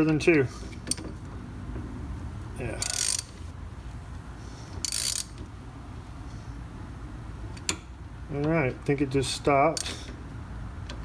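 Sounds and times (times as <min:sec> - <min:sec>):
ratchet clicking: 0:02.7 - 0:03.4, 0:04.8 - 0:05.5.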